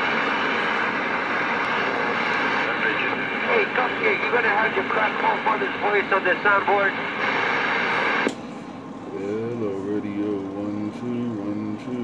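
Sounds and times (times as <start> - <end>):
radio static hiss: 0.0 - 8.3.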